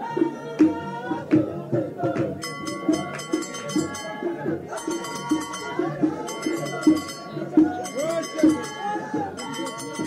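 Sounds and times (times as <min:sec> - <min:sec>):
steady drum beat: 0:00.0 - 0:10.0
voices: 0:00.0 - 0:10.0
metal percussion clashing: 0:02.4 - 0:10.0.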